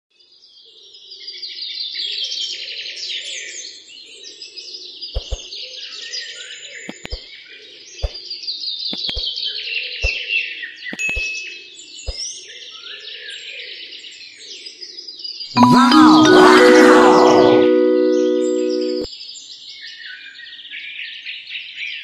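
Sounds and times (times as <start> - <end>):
low drone: 15.6 - 19.1.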